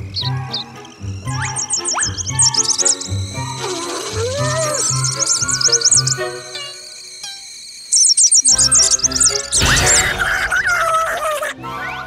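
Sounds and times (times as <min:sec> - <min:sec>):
swooping tone: 0:00.0 - 0:10.1
cartoon baby birds chirping: 0:00.0 - 0:11.5.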